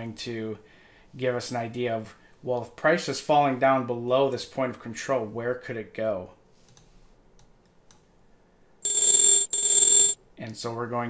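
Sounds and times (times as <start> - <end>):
high electronic alert tone: 8.9 - 10.2.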